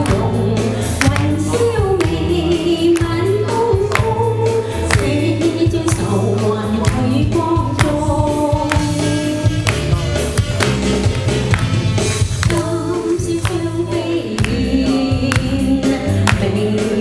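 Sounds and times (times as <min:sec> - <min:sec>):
woman singing pop song: 0:00.0 - 0:09.9, 0:12.2 - 0:17.0
drum beat: 0:00.0 - 0:16.8
bass: 0:00.0 - 0:17.0.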